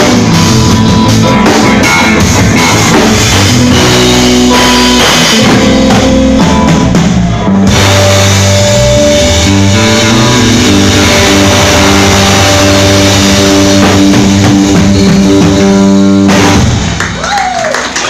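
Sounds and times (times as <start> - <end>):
live rock band: 0.0 - 18.0
person whooping: 17.1 - 18.0.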